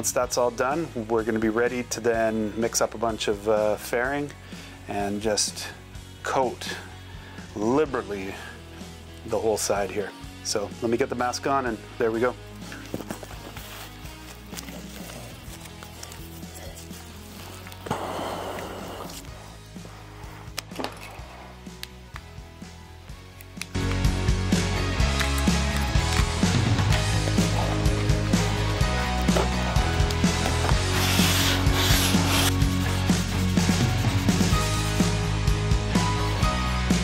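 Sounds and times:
background music with low note: 0:00.0 - 0:37.0
sanding board scraping fibreglass: 0:30.6 - 0:34.6.

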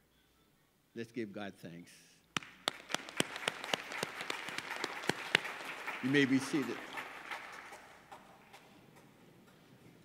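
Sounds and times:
sharp claps close to microphone: 0:02.3 - 0:09.6
crowd applauding: 0:02.4 - 0:08.8.

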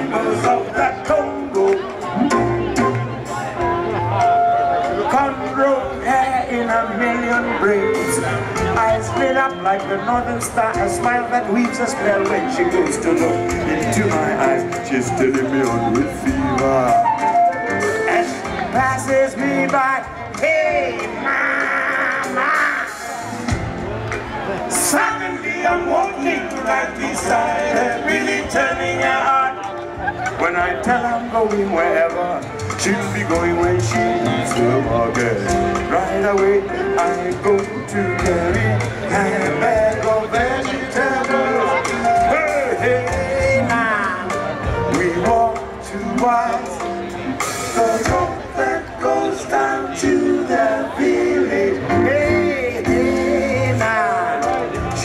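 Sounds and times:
live band music: 0:00.0 - 0:55.0.

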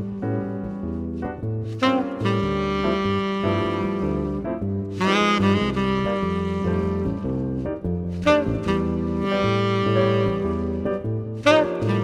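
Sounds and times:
bass: 0:00.0 - 0:12.0
piano: 0:00.0 - 0:12.0
saxophone melody: 0:00.0 - 0:12.0.

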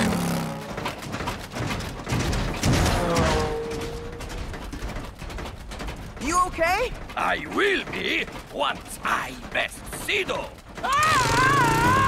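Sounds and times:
racing vehicle engines: 0:00.0 - 0:04.6
quick clicks and knocks: 0:00.1 - 0:11.8.

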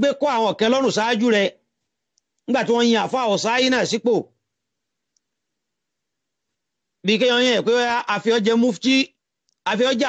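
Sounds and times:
man's voice: 0:00.0 - 0:01.6, 0:02.5 - 0:04.3, 0:07.0 - 0:10.0
faint click: 0:05.1 - 0:05.3.

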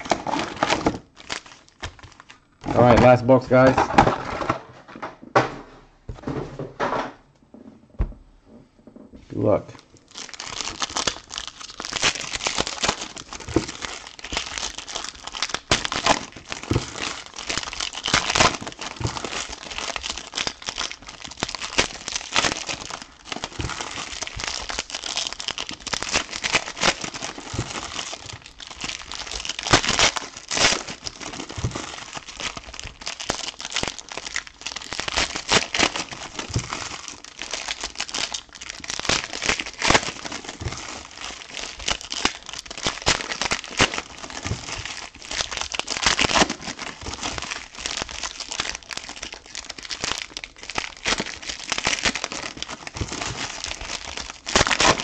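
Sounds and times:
foil packs tearing: 0:00.0 - 0:04.7, 0:10.1 - 0:55.0
foil wrappers crinkling: 0:00.0 - 0:05.1, 0:09.4 - 0:55.0.

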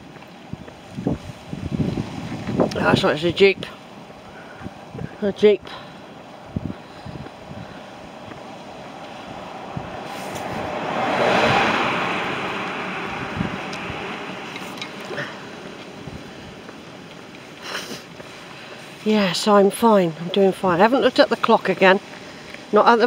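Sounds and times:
vehicle driving past: 0:07.8 - 0:17.1.

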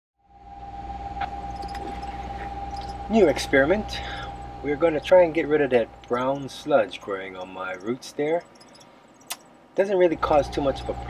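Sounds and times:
high-pitched whine: 0:00.2 - 0:11.0
steady low hum: 0:00.2 - 0:11.0.

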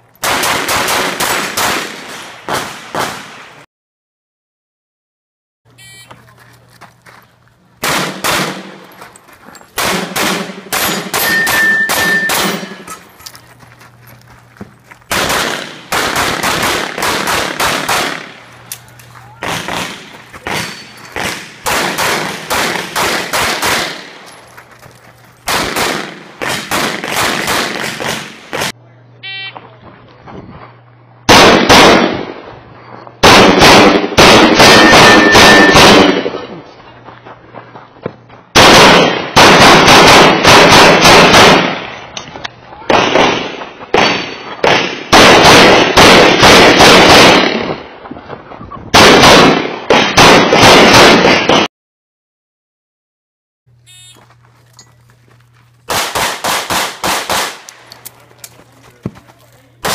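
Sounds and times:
short electronic beep: 0:05.8 - 0:06.2, 0:11.2 - 0:13.0, 0:29.2 - 0:29.6, 0:53.9 - 0:54.3
pistol shots in rapid strings: 0:07.8 - 0:08.8, 0:09.8 - 0:12.9, 0:15.1 - 0:18.4, 0:19.4 - 0:24.1, 0:25.5 - 0:28.7, 0:31.3 - 0:32.3, 0:33.2 - 0:36.3, 0:38.6 - 0:41.8, 0:42.9 - 0:47.8, 0:49.0 - 0:51.7, 0:55.9 - 0:57.7.

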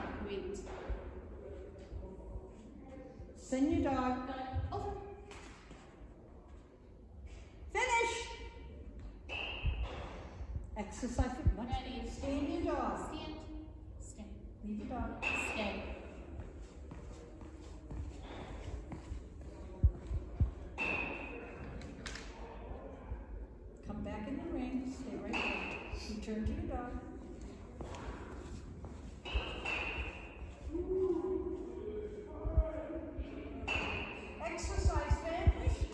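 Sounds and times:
dull low thumps: 0:10.4 - 0:12.4, 0:34.4 - 0:35.9.

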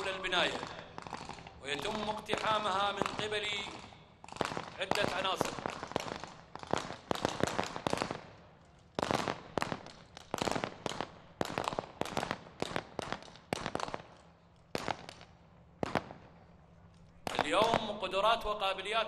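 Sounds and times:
rifle gunshots: 0:00.0 - 0:08.2.

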